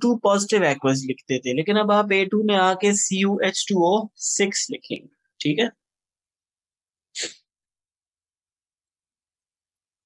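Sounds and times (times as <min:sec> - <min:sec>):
person breathy burst: 0:07.2 - 0:07.4.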